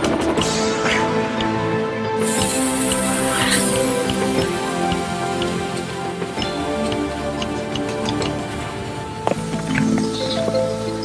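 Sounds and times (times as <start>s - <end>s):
cinematic music with sustained chords: 0.0s - 11.0s
faint ticking: 2.4s - 11.0s.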